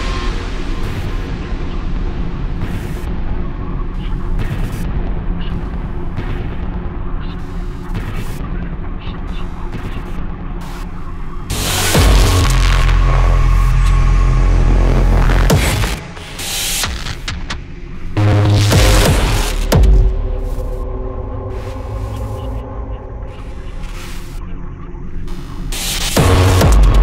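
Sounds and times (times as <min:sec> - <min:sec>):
heavy distorted bass: 0:10.4 - 0:27.0.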